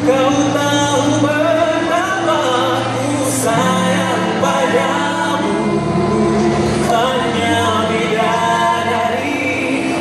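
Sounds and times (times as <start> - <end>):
a cappella group singing in harmony: 0.0 - 10.0.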